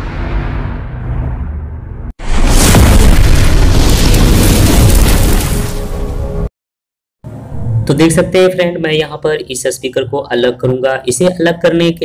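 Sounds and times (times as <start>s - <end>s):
explosion boom and rumble: 0.0s - 6.5s.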